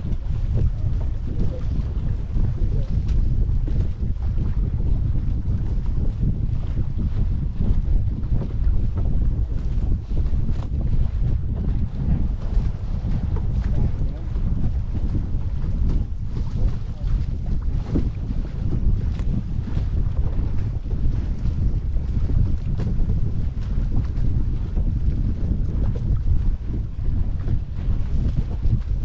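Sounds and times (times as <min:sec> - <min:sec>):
water rushing along hull: 0:00.0 - 0:29.0
water splashing against bow: 0:00.0 - 0:29.0
wind buffeting microphone: 0:00.0 - 0:29.0.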